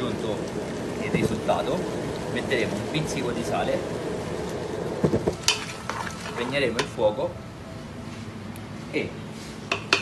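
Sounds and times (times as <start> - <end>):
cooking sizzle: 0.0 - 8.5
spoon knocking against pot: 9.7 - 10.0.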